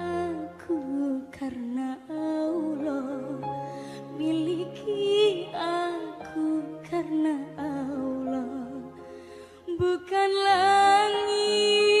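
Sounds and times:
sustained musical accompaniment: 0.0 - 12.0.

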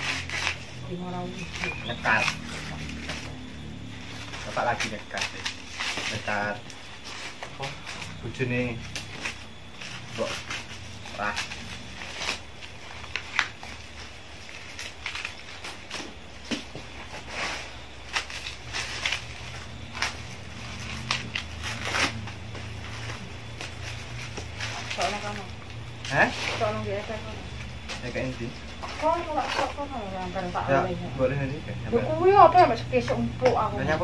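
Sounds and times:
corn husks being torn: 0.0 - 3.4, 4.1 - 27.1.

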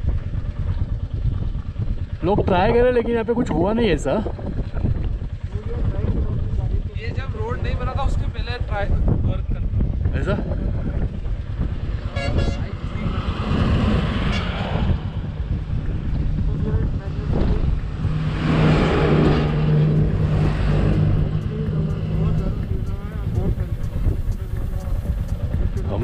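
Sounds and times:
wind buffeting microphone: 0.0 - 26.0
heavy truck engine passing: 11.5 - 26.0.

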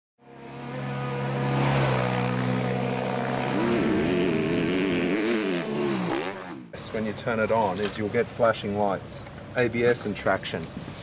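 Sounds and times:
motorcycle engine revving: 0.2 - 6.8.

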